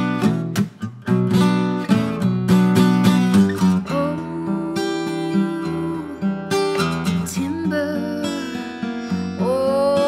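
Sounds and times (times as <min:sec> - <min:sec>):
solo acoustic guitar: 0:00.0 - 0:10.0.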